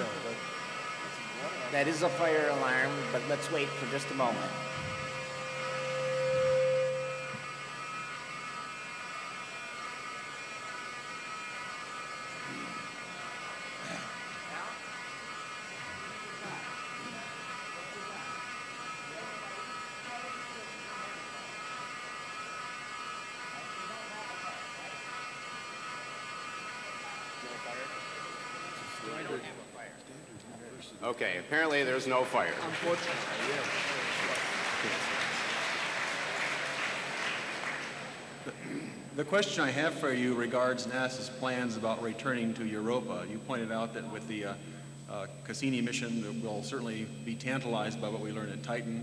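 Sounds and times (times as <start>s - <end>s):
fire alarm buzzing: 0.0s - 29.5s, 32.2s - 38.6s, 39.2s - 49.0s
loud steady tone: 0.0s - 30.0s, 31.2s - 49.0s
faint voices murmuring: 0.0s - 35.7s.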